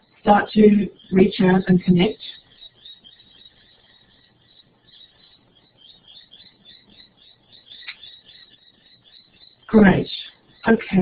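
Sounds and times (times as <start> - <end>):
faint low hum: 0.0 - 11.0
rapid high chirping calls: 0.0 - 11.0.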